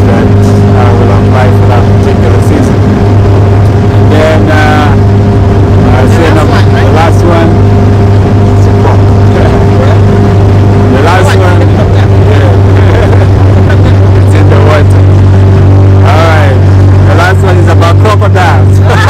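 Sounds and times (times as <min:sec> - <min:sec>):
motorboat engine droning: 0:00.0 - 0:19.0
voices: 0:00.0 - 0:19.0.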